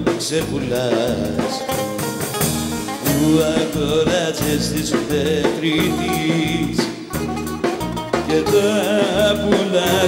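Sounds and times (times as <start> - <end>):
bass guitar: 0.0 - 10.0
drum kit: 0.0 - 10.0
bouzouki lead melody: 1.6 - 3.4, 5.8 - 9.4.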